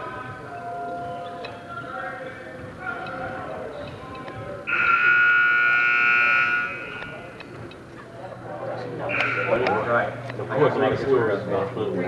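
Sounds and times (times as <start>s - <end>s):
gym buzzer blast: 4.7s - 7.3s, 9.1s - 9.9s.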